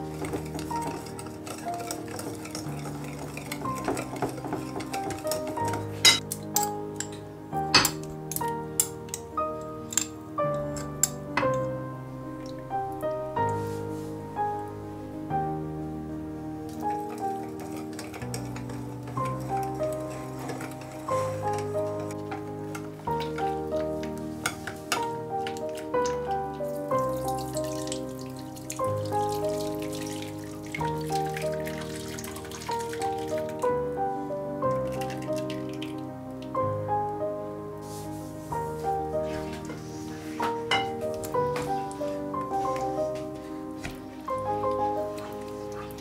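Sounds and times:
whisk clinking on bowl: 0.0s - 7.2s, 17.1s - 22.1s
background music with falling notes: 0.0s - 46.0s
whisk clicking against ceramic bowl: 0.2s - 5.8s.

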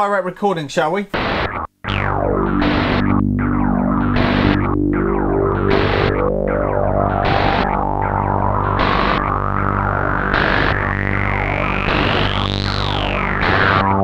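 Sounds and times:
short glitchy pulse: 1.2s - 14.0s
sustained synth notes: 1.2s - 14.0s
synth tone sliding upward: 1.9s - 14.0s.

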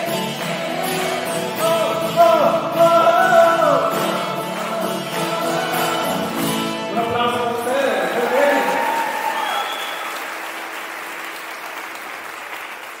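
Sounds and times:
audience applause: 0.0s - 1.9s, 3.1s - 6.4s, 7.6s - 13.0s.

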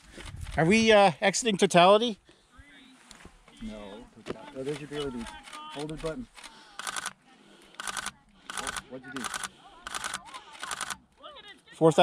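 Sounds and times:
camera shutter clicking: 4.6s - 11.0s.

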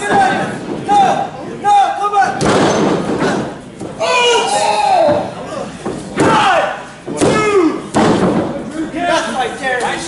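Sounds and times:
slams on wrestling ring: 2.4s - 3.5s, 6.2s - 8.6s
person shouting: 4.0s - 5.3s.

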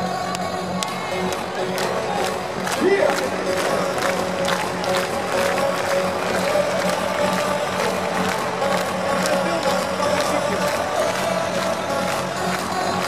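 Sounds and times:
crowd cheering: 0.0s - 13.0s
hardstyle dance music: 0.0s - 13.0s.

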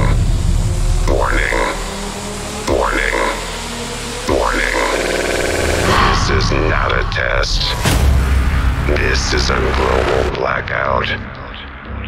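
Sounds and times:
deep bass drone: 0.0s - 12.0s
processed synthesized voice fragment: 1.1s - 2.1s, 2.7s - 7.8s
buzzing stutter effect: 1.1s - 7.6s.

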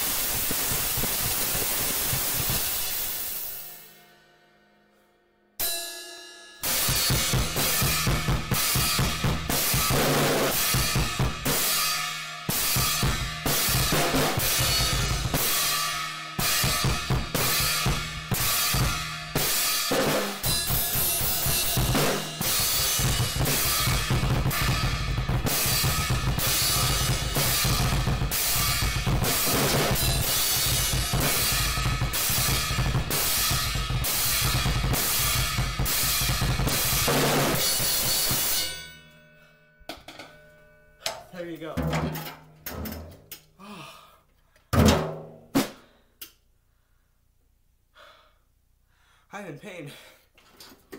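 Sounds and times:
drum kit played fast: 0.0s - 3.9s, 6.6s - 38.8s, 41.4s - 43.4s.

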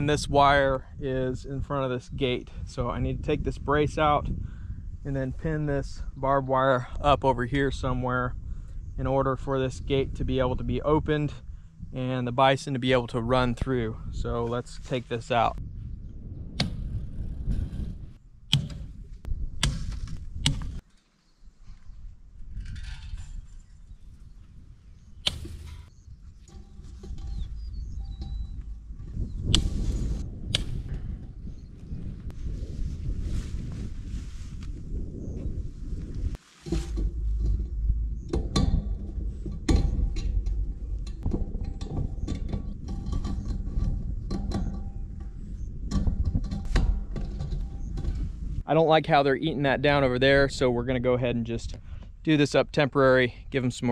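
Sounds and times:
wind rumble on microphone: 0.0s - 20.8s, 21.4s - 53.9s.

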